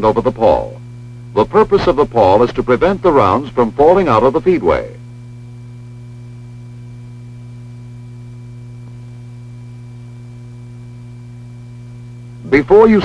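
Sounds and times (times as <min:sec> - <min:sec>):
low electrical mains hum: 0:00.0 - 0:13.0
faint high steady tones: 0:09.1 - 0:13.0.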